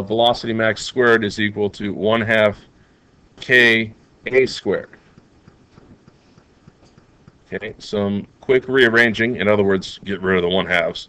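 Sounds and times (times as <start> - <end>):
soft irregular clicks: 4.9 - 7.6.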